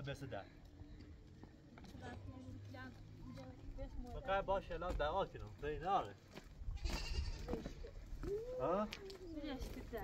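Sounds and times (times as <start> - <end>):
goats bleating: 6.8 - 7.8.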